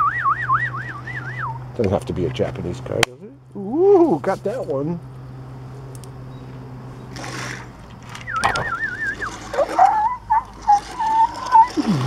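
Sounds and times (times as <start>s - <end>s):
mouth-made siren imitation: 0.0s - 1.7s, 8.2s - 12.0s.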